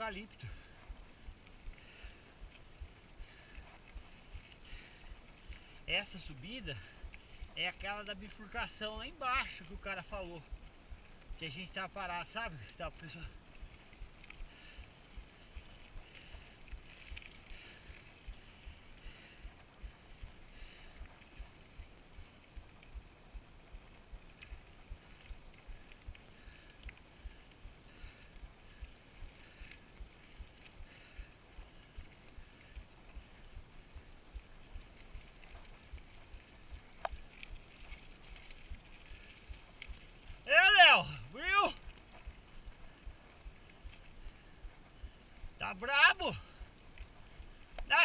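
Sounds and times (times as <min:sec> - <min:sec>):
faint hiss: 0:00.0 - 0:48.0.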